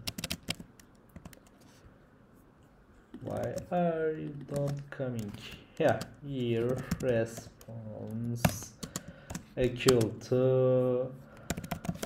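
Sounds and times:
computer keyboard typing: 0.0 - 1.6, 3.2 - 10.2, 11.3 - 12.0.

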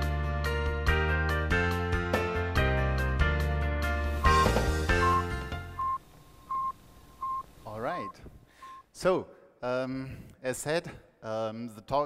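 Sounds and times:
intro music: 1.2 - 7.4
short high electronic beeps: 4.2 - 8.8.

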